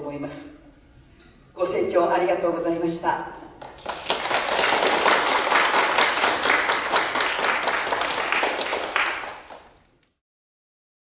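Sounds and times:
audience applauding: 0:03.6 - 0:09.8.

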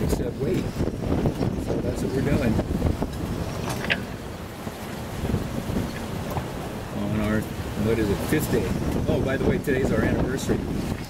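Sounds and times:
rough seas washing: 0:00.0 - 0:11.0
wind buffeting microphone: 0:00.0 - 0:11.0.

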